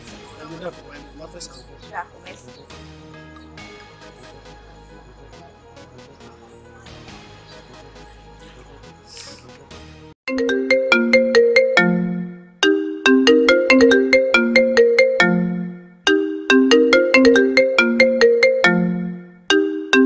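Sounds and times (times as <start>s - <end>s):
mobile phone melodic ringtone: 10.3s - 20.0s.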